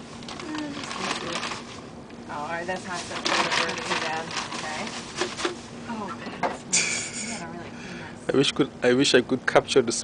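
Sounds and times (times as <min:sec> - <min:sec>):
plastic bag rustling: 0:00.0 - 0:05.8.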